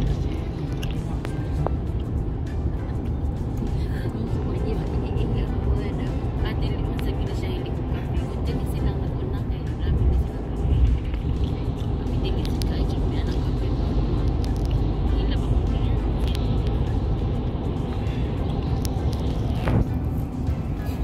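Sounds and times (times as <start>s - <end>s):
car road noise rumble: 0.0s - 21.0s
music playing: 0.0s - 21.0s.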